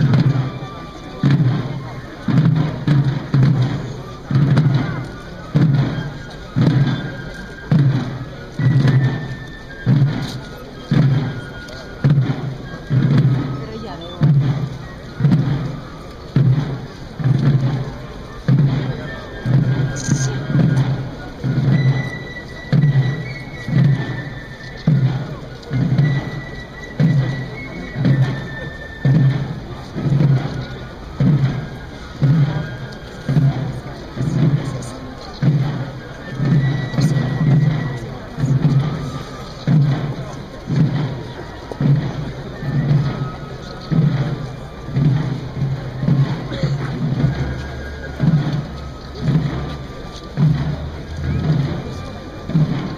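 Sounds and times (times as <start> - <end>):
drums beating march cadence: 0.0 - 52.9.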